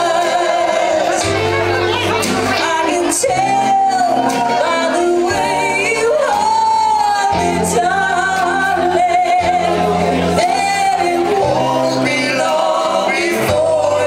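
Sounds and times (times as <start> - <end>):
drums: 0.0 - 14.0
electric bass: 0.0 - 14.0
electric guitar: 0.0 - 14.0
woman singing lead: 0.0 - 14.0.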